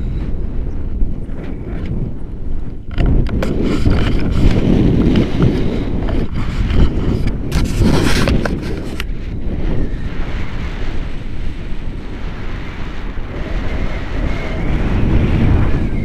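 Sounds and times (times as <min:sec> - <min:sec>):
wind rumbling on microphone: 0:00.0 - 0:16.0.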